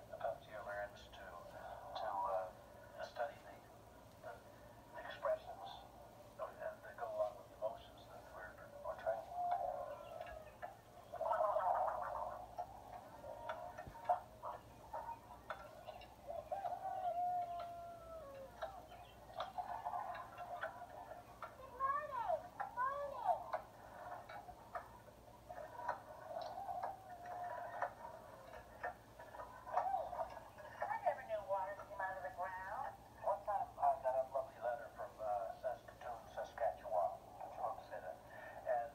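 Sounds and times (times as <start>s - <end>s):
indistinct voices through small speaker: 0.0s - 38.9s.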